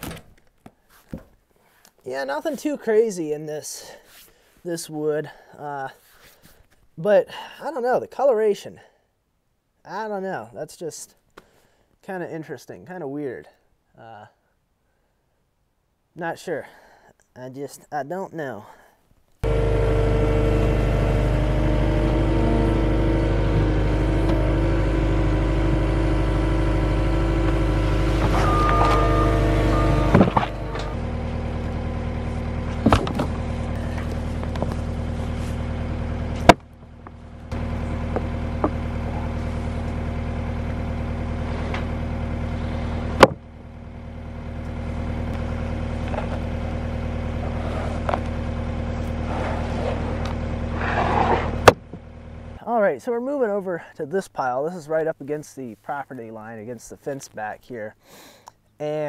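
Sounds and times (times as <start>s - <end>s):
diesel engine running: 19.4s - 52.6s.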